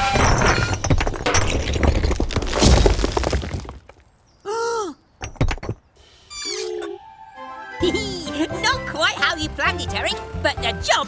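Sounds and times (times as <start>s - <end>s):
brick wall crashing down: 0.0s - 4.1s.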